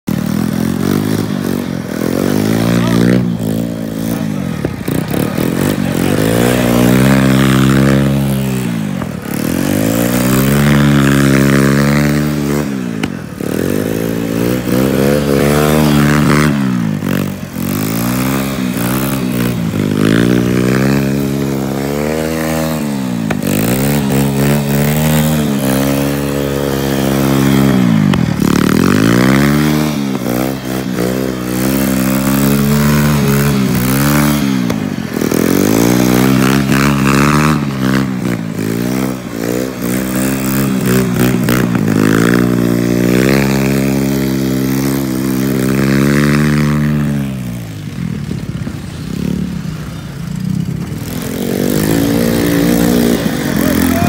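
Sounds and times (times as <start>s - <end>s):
three-wheeler engine revving: 0.0s - 54.0s.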